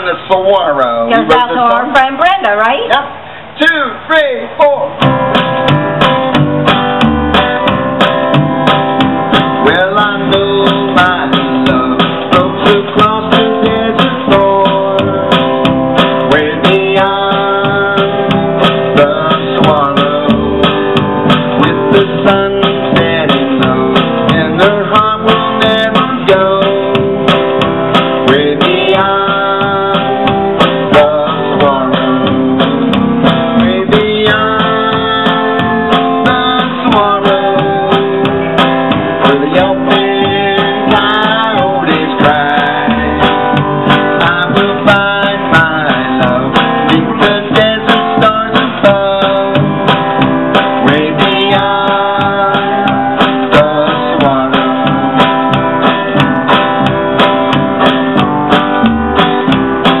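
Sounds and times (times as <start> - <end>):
acoustic guitar strumming: 0.0 - 3.6, 4.5 - 60.0
upright double bass: 4.7 - 60.0.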